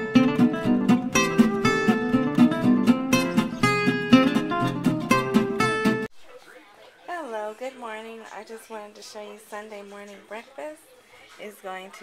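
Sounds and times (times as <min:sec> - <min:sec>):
acoustic guitar music: 0:00.0 - 0:06.1.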